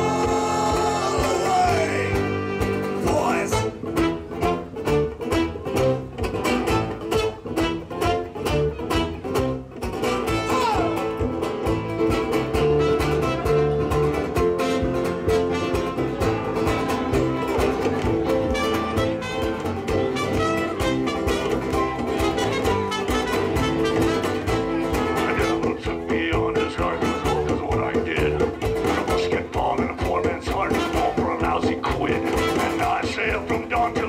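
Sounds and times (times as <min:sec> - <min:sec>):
trumpet: 0:00.0 - 0:11.1, 0:12.6 - 0:17.7, 0:18.3 - 0:27.8, 0:30.6 - 0:31.2, 0:32.2 - 0:33.0
accordion: 0:00.0 - 0:29.7
guitar: 0:00.0 - 0:34.0.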